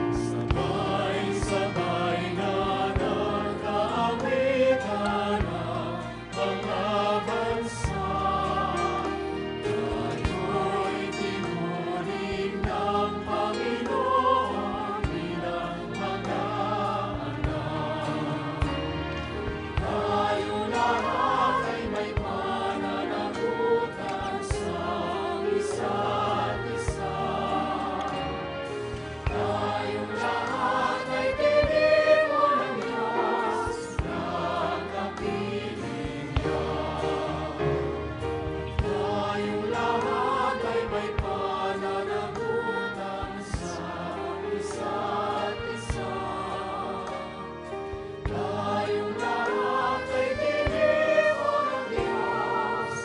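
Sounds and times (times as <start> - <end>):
choir singing worship song: 0.0 - 53.0
instrumental accompaniment: 0.0 - 53.0.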